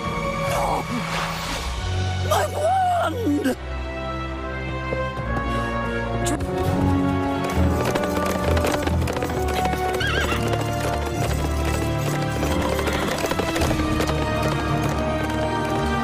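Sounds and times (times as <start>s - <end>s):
orchestral music: 0.0s - 16.0s
galloping hoofbeats: 4.5s - 16.0s
horse whinny: 9.6s - 10.8s.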